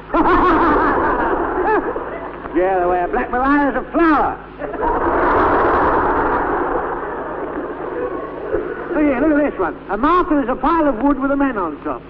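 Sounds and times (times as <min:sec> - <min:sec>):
studio audience laughing: 0:00.0 - 0:02.6, 0:04.6 - 0:09.6.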